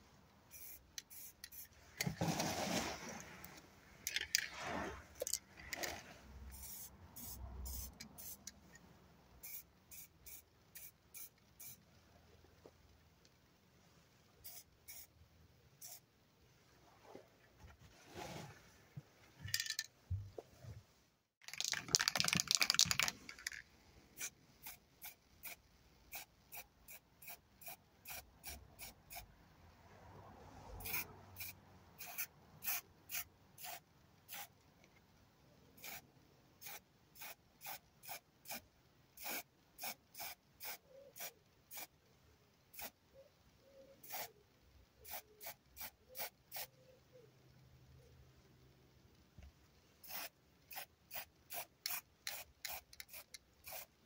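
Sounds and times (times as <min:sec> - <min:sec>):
spray-paint can hissing: 0:00.5 - 0:01.7, 0:06.5 - 0:08.5, 0:09.4 - 0:11.8, 0:14.4 - 0:15.1, 0:15.8 - 0:16.0, 0:24.2 - 0:29.3, 0:30.8 - 0:34.5, 0:35.8 - 0:36.0, 0:36.6 - 0:38.6, 0:39.2 - 0:41.9, 0:42.7 - 0:43.0, 0:44.0 - 0:44.3, 0:45.0 - 0:46.7, 0:50.0 - 0:53.9.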